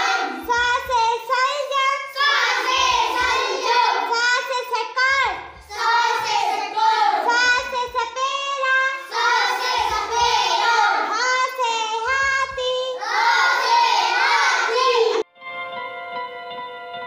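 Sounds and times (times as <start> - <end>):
child singing: 0.0 - 15.2
backing track with low beat: 2.5 - 13.4.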